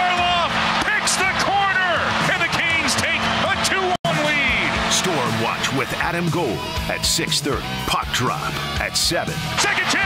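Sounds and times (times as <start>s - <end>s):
announcer shouting excitedly: 0.0s - 10.0s.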